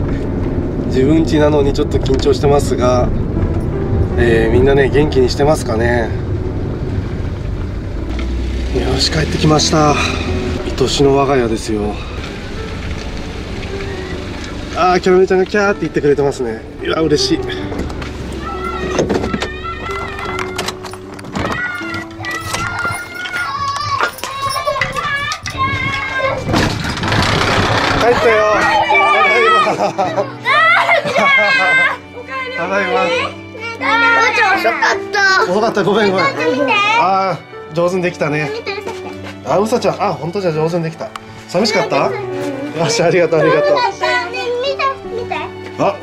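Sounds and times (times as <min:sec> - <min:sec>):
van engine and road noise: 0:00.0 - 0:30.3
sliding door rumbling in track: 0:26.2 - 0:28.9.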